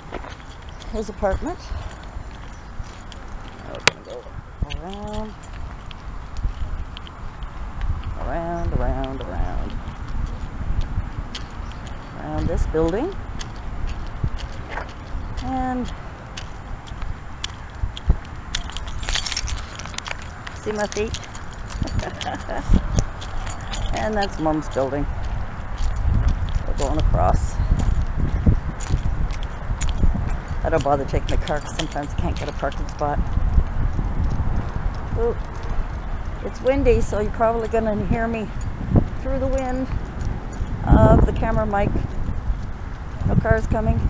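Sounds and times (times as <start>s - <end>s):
keys jingling: 0.0s - 7.4s, 8.9s - 37.5s, 38.1s - 41.3s
footsteps on pavement: 0.0s - 44.0s
wind rumble on microphone: 0.0s - 44.0s.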